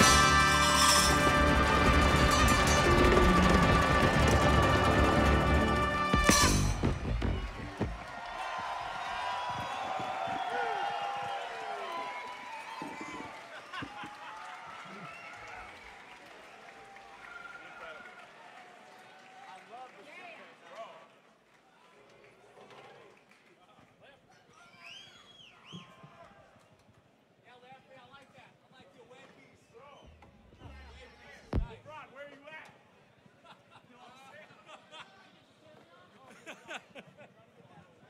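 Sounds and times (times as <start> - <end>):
funk band with horns playing: 0.0 - 8.0
audience cheering and shouting: 0.0 - 15.8.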